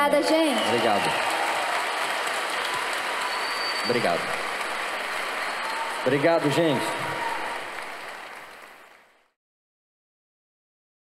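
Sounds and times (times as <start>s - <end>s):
audience applause: 0.0s - 9.3s.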